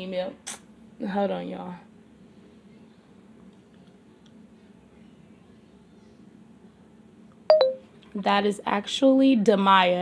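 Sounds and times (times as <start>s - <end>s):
smartphone alert chime: 7.5s - 7.8s.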